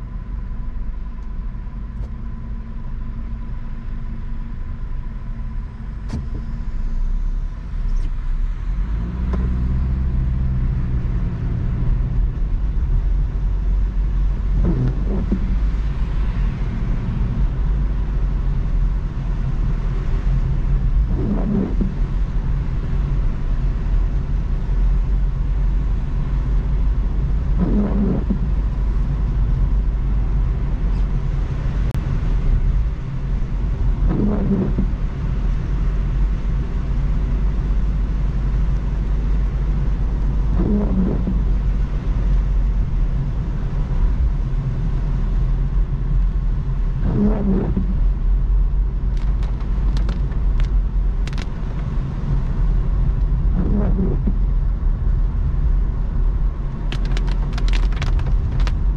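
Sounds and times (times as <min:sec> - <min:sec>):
car engine and tyre rumble: 0:00.0 - 0:58.9.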